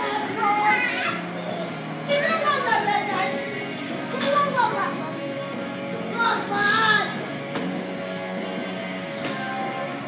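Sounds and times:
background music: 0.0 - 10.0
children calling out: 0.2 - 3.0.

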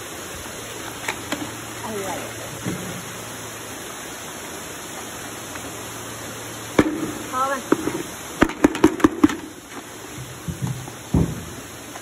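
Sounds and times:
water rushing in tanks: 0.0 - 12.0.

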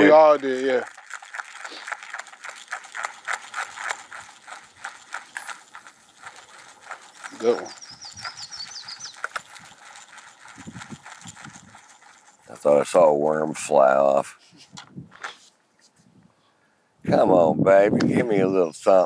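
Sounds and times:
fishing reel being cranked: 0.0 - 12.5
faint bird chirps: 7.3 - 9.7.

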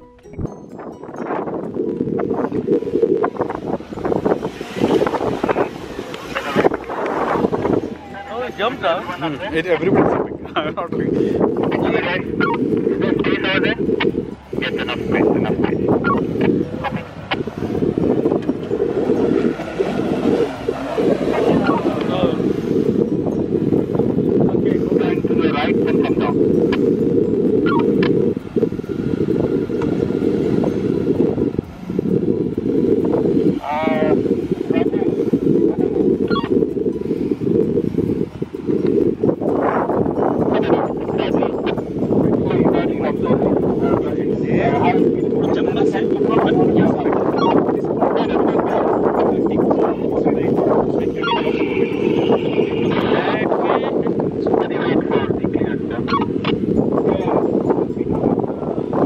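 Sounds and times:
wind buffeting microphone: 0.0 - 59.0
muffled indistinct voices: 4.5 - 17.4, 24.4 - 26.7, 33.6 - 36.5, 39.6 - 58.7.

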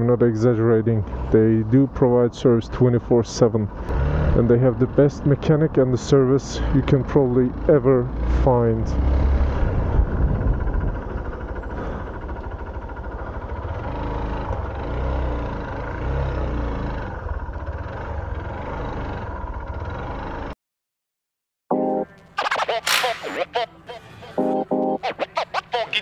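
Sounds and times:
motorcycle engine running: 3.6 - 20.5
wind rumble on microphone: 9.4 - 11.5.

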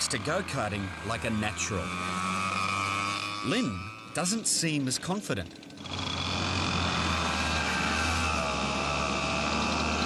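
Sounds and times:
go-kart engine running: 0.0 - 10.0.

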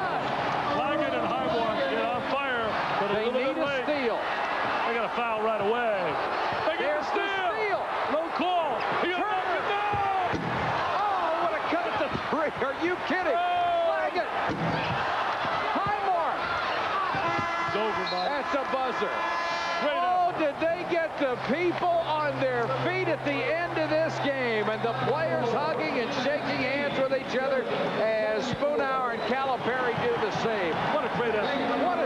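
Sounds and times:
arena crowd noise: 0.0 - 32.0
basketball bouncing: 9.8 - 10.8, 14.4 - 16.0, 17.0 - 18.0.

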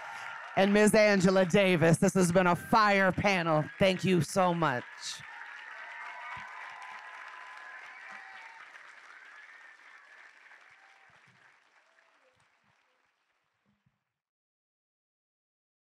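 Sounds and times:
audience applauding: 0.0 - 13.5.

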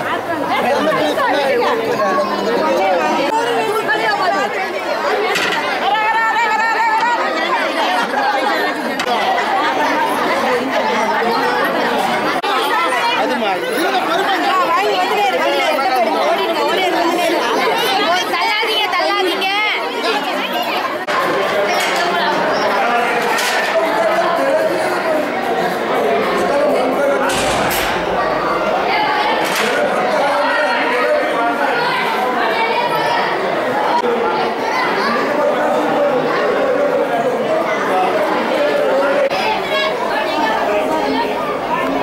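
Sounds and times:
crowd chatter: 0.0 - 42.0.

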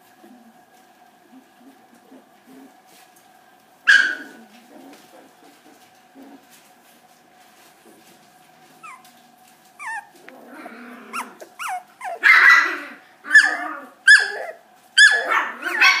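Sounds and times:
puppy whining and yelping: 8.8 - 9.2, 9.8 - 16.0.

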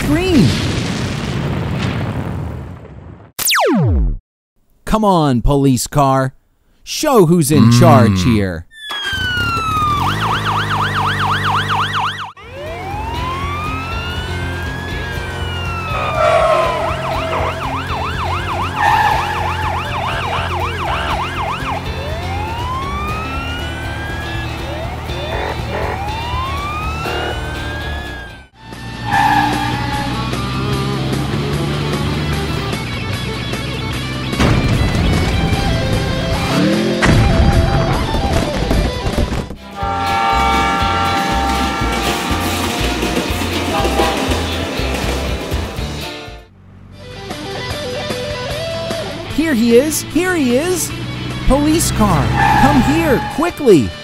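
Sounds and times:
police siren: 7.6 - 32.5, 39.8 - 44.7, 51.8 - 53.8
upbeat background music: 49.1 - 54.0.

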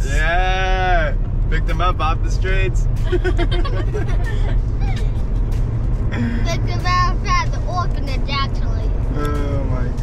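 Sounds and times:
vehicle driving rumble from inside: 0.0 - 10.0.

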